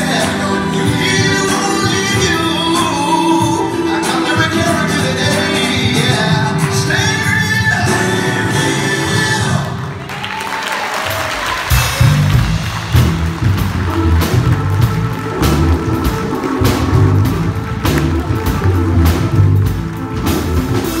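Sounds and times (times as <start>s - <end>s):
gospel band playing: 0.0s - 21.0s
congregation clapping along: 9.6s - 21.0s
low bass notes: 11.7s - 21.0s.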